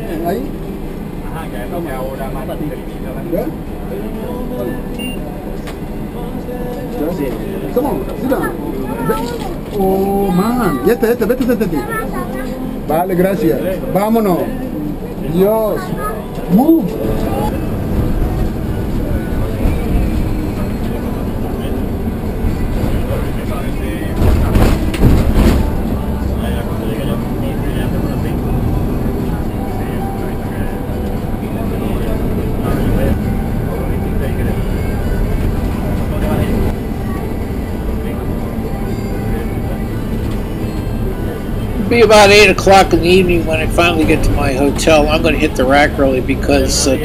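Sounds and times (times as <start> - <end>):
bus engine and road noise: 0.0 - 47.0
bumps and rattles: 22.3 - 26.7.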